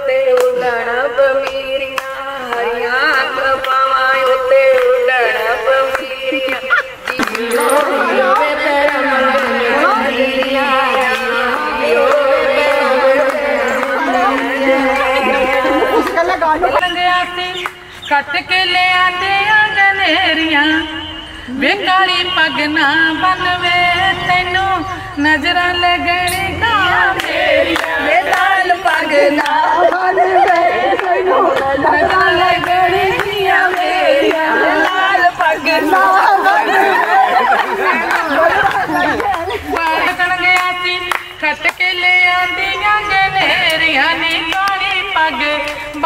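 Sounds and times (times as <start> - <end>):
voices chattering: 0.0 - 46.0.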